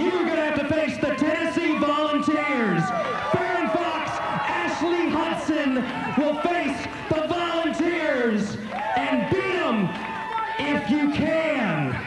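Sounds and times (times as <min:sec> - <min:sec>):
man speaking: 0:00.0 - 0:09.9.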